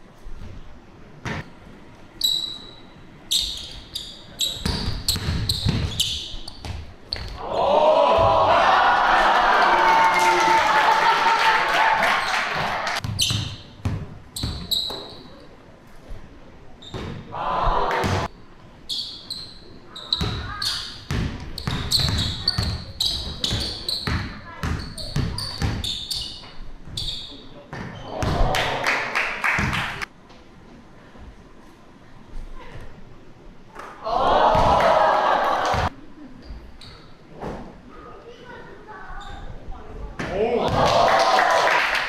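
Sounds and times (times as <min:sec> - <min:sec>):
sneakers squeaking: 0:01.2 - 0:07.4, 0:12.2 - 0:17.3, 0:18.0 - 0:28.5, 0:35.7 - 0:37.7, 0:39.1 - 0:39.6
basketball bouncing on wood floor: 0:04.6 - 0:06.0, 0:21.1 - 0:25.8.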